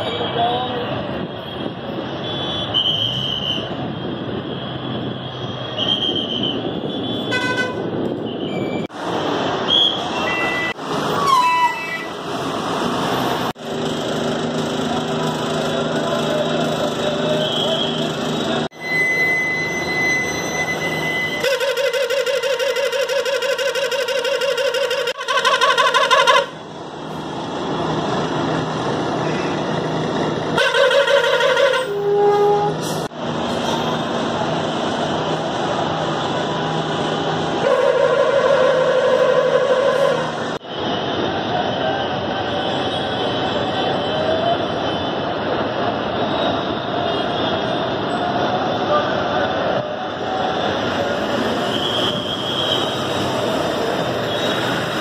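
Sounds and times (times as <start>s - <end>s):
bus engines running: 0.0s - 55.0s
bus horns: 5.8s - 8.6s, 17.0s - 26.6s, 30.5s - 33.1s, 37.6s - 40.6s.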